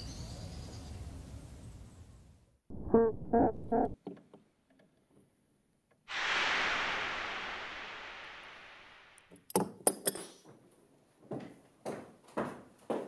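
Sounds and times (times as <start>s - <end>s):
person laughing: 2.8s - 4.0s
sudden hiss: 6.1s - 9.3s.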